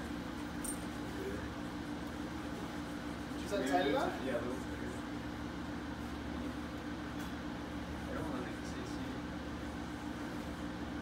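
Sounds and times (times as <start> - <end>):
air conditioner humming: 0.0 - 11.0.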